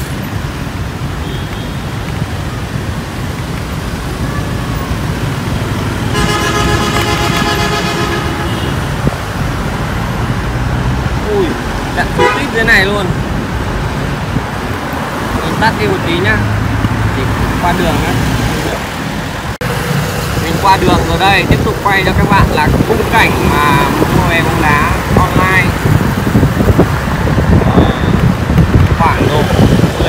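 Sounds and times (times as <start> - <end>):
cars and motorbikes passing: 0.0 - 30.0
vehicle horn: 6.1 - 8.9, 12.2 - 12.5.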